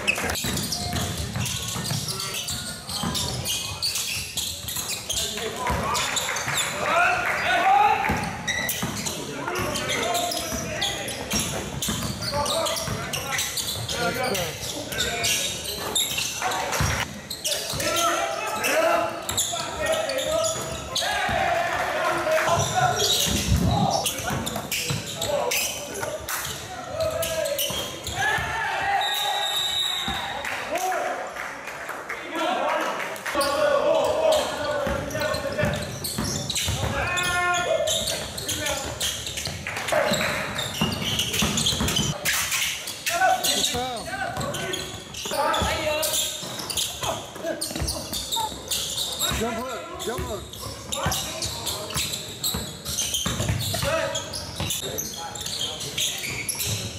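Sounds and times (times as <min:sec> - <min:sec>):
basketball bouncing on wooden floor: 0:00.4 - 0:03.4.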